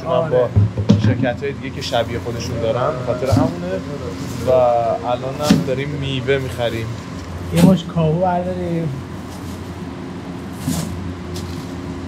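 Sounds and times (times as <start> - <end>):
low machine hum: 0.0 - 12.0
plastic bag rustling: 9.1 - 12.0.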